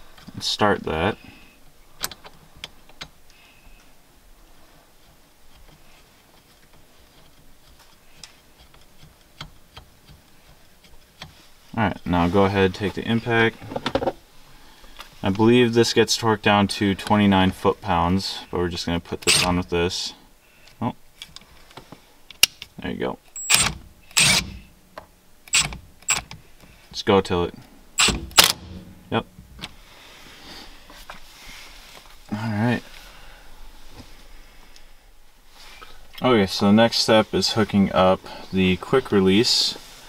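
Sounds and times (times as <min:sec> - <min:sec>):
cordless impact driver bursts: 0:19.3 - 0:19.5, 0:23.4 - 0:24.7, 0:28.0 - 0:28.8.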